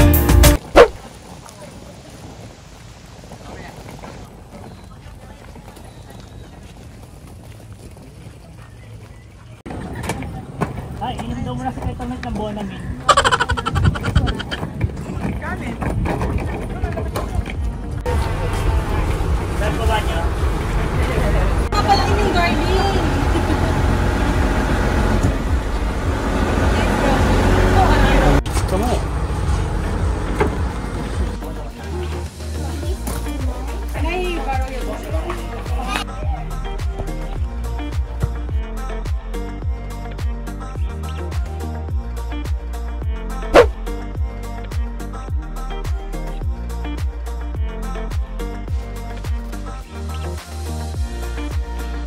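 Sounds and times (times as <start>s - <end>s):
suitcase wheels rattling on gravel: 0.6s - 13.0s
people chatting: 3.4s - 6.8s, 8.2s - 14.6s, 16.6s - 23.2s, 31.4s - 36.7s.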